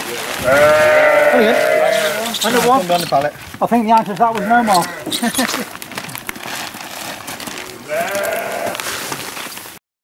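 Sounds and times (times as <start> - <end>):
straw rustling and crackling: 0.0 - 9.8
drawn-out animal cry: 0.4 - 3.2, 4.2 - 5.6, 7.8 - 8.8.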